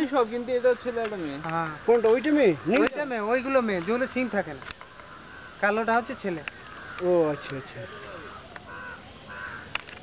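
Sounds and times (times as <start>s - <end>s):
crow cawing: 0.0s - 10.0s.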